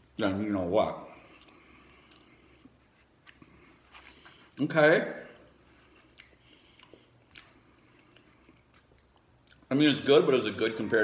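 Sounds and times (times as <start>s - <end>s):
faint chewing: 1.1s - 4.6s, 5.4s - 10.0s.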